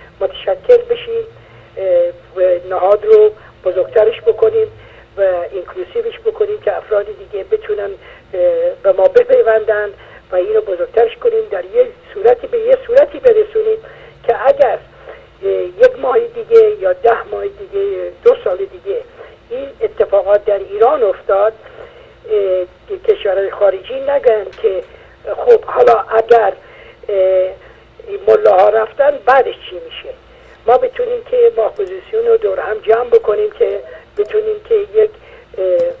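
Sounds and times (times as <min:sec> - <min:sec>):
person talking over telephone: 0:15.4 - 0:21.6, 0:22.3 - 0:36.0.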